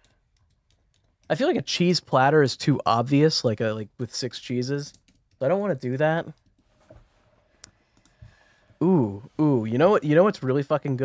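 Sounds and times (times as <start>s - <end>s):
person speaking: 1.2s - 6.4s, 8.8s - 11.0s.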